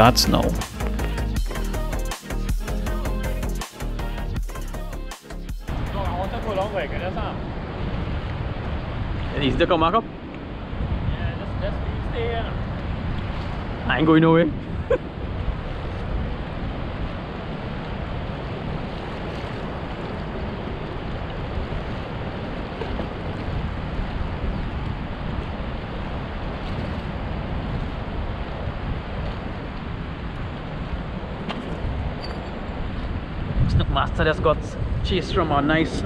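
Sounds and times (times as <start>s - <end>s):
moving water: 5.7s - 33.7s
wind on microphone: 5.7s - 36.0s.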